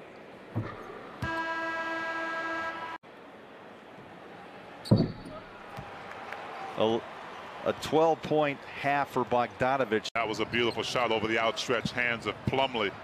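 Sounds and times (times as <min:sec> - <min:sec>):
horn-like tone: 0:01.2 - 0:03.0.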